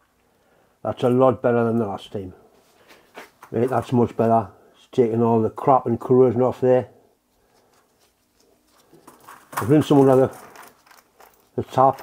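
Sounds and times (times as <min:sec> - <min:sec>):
faint handling of parts: 0:00.0 - 0:04.4, 0:07.1 - 0:12.0.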